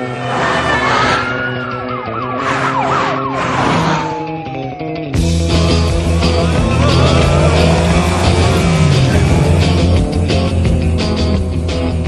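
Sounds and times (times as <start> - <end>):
vehicles whooshing by: 0.0 - 4.6, 5.5 - 11.4
music: 0.0 - 12.0
siren wailing and yelping: 0.3 - 10.1.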